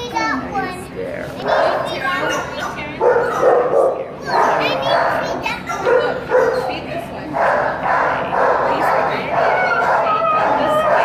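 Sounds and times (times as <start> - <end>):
dogs barking and yipping: 1.4 - 11.0.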